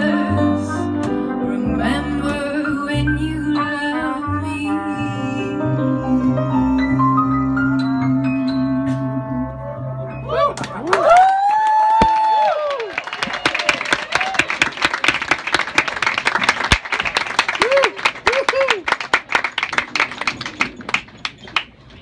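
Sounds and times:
audience applauding: 10.6s - 21.8s.

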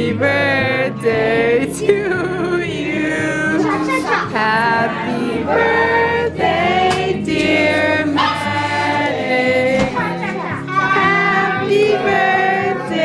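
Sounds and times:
group of voices singing: 0.0s - 13.0s.

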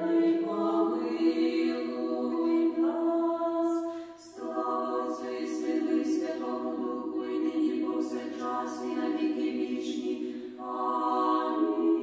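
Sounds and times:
women's choir singing: 0.0s - 12.0s.

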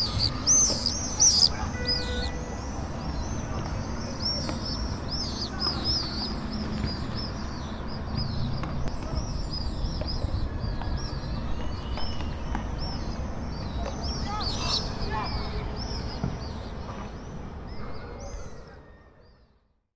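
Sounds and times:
birds chirping: 0.0s - 19.5s.

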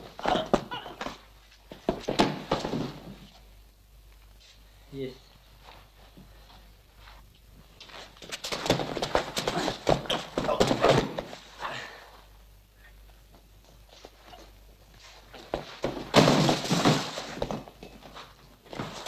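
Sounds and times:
bodies hitting mats: 0.0s - 3.5s, 7.8s - 11.6s, 15.0s - 19.0s
feet shuffling: 0.0s - 12.4s, 13.0s - 19.0s.

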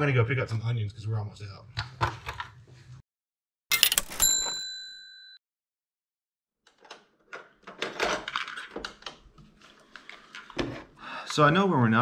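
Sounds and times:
cassette plastic clicks and clatter: 6.7s - 9.2s.

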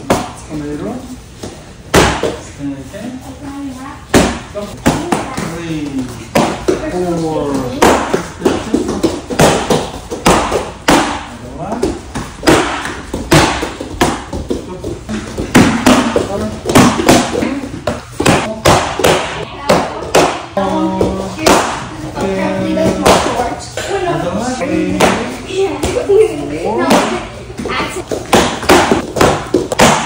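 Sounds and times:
kicks slapping kicking paddles: 1.4s - 2.4s, 7.6s - 20.4s, 26.8s - 30.0s.

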